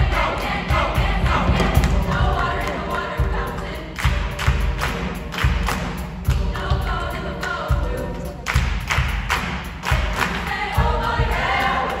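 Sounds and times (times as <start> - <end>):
low thumps: 0.0 - 2.6
mixed choir singing: 0.0 - 12.0
hand claps: 4.0 - 6.4, 8.4 - 10.6.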